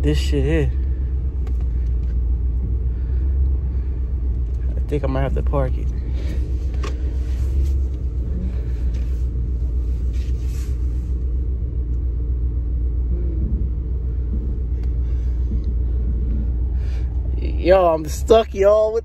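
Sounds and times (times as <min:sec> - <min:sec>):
truck engine rumble: 0:00.0 - 0:19.0.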